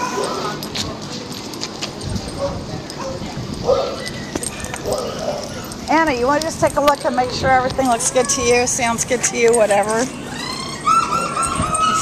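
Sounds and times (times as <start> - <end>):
dog whining: 0.0 - 0.7, 3.0 - 5.9, 9.8 - 12.0.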